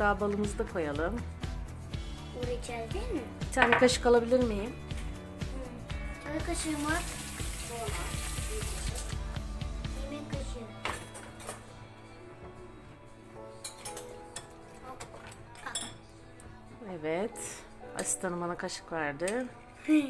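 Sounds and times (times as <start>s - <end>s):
light background music: 0.0s - 20.0s
metal cutlery clinking: 10.8s - 11.8s, 13.6s - 16.1s.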